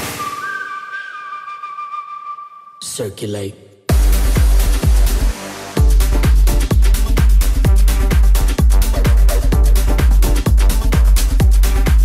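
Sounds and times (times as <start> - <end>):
whistle-like synth tone: 0.0 - 2.9
heavy kick drum beat: 3.9 - 12.0.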